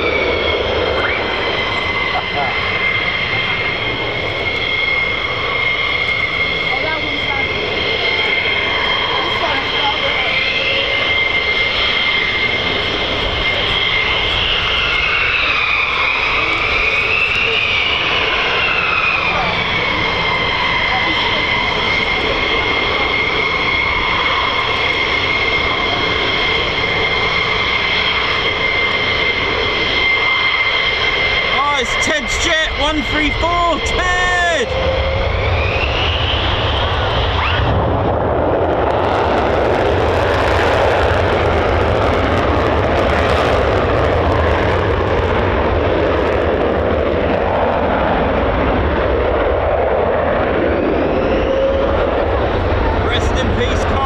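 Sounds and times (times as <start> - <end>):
jet engine high-pitched whine: 0.0 - 54.0
second jet whine rising and falling: 0.0 - 54.0.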